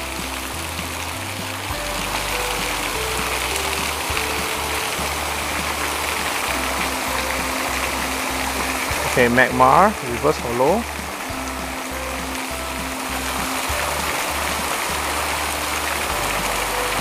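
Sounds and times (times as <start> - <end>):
background music with bass line: 0.0 - 17.0
water falling from water feature: 0.0 - 17.0.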